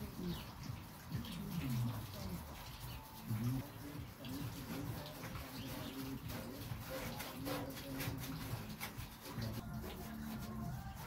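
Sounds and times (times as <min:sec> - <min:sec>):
cooing bird calls: 0:00.0 - 0:08.8.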